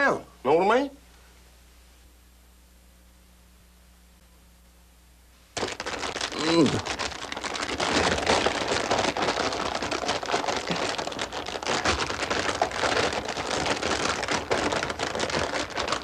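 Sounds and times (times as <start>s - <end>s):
chip bag crinkling: 5.6s - 16.0s.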